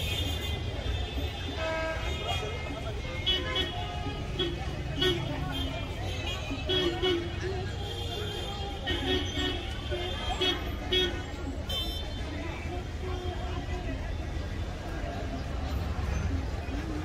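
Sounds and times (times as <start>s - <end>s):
traffic engine rumble: 0.0s - 17.0s.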